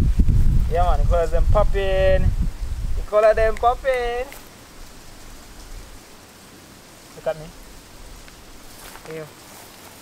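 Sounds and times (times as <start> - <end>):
breeze rumble on microphone: 0.0 - 4.3
even hiss: 0.0 - 10.0.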